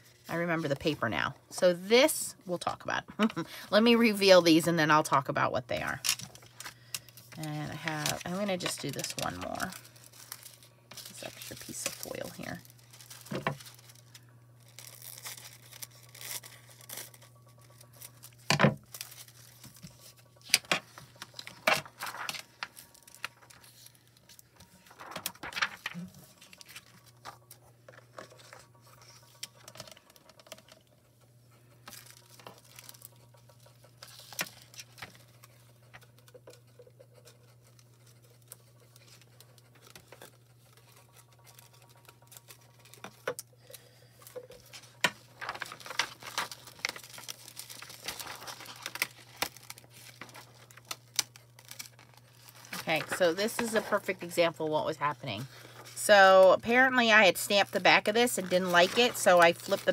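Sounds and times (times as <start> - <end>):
plastic foil crinkling: 5.8 - 59.9
low hum: 6.0 - 37.0.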